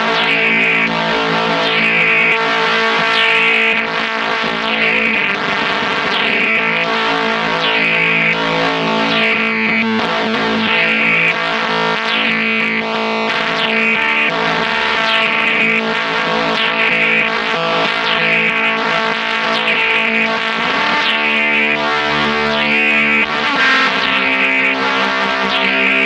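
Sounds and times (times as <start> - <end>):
fuzz electric guitar: 0.0 - 26.0.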